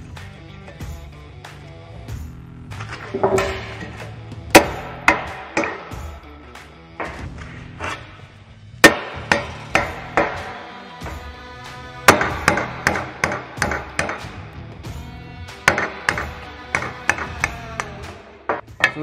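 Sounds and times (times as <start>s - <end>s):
background music: 0.0s - 19.0s
hammer striking metal driver: 3.0s - 6.2s, 8.8s - 10.6s, 12.0s - 14.4s, 15.6s - 19.0s.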